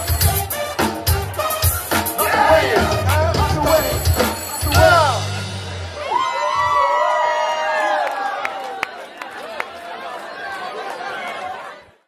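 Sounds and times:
crowd chattering: 0.0s - 6.7s, 7.8s - 12.0s.

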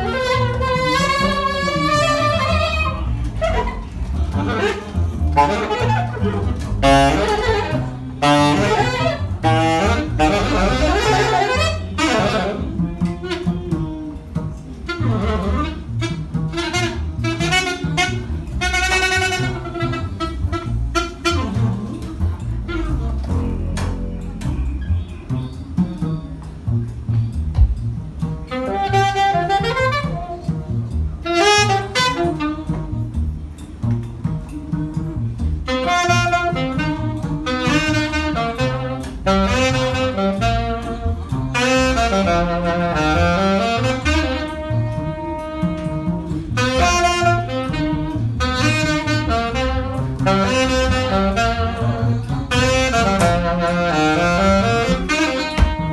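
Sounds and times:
alto saxophone runs: 0.0s - 14.2s, 14.8s - 23.4s, 28.5s - 33.6s, 34.4s - 55.9s
upright double bass: 0.0s - 55.9s.

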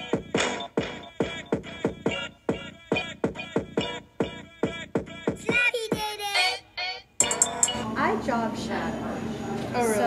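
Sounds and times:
lo-fi music with vocal line: 0.0s - 8.0s.

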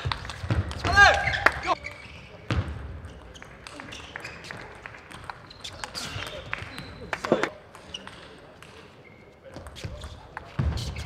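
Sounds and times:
table tennis ball bouncing: 2.5s - 8.8s.

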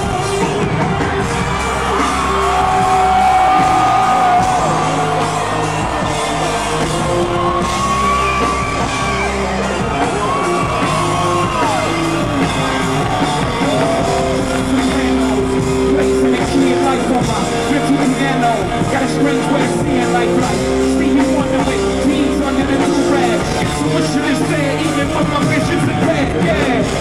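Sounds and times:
loud hip-hop concert music: 0.0s - 27.0s.

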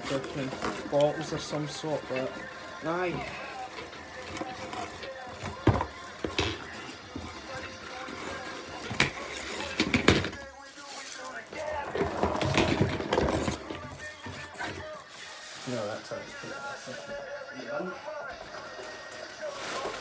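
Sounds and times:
packing paper rustling: 0.0s - 6.2s, 6.9s - 17.5s, 18.3s - 20.0s
small items knocking and clinking: 0.2s - 14.9s.

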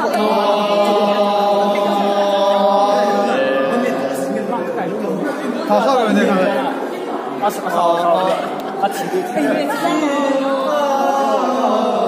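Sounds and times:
choir singing sustained chords: 0.0s - 4.6s.

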